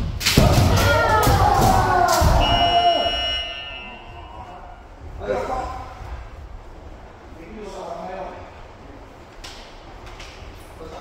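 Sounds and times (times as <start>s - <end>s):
fencers shouting: 0.3s - 4.9s
high electronic beep: 2.4s - 4.3s.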